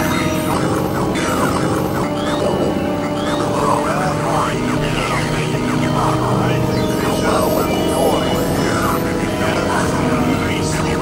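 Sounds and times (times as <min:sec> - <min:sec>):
synthesizer drone tones: 0:00.0 - 0:11.0
wavering voice-like synth sweeps: 0:00.0 - 0:11.0.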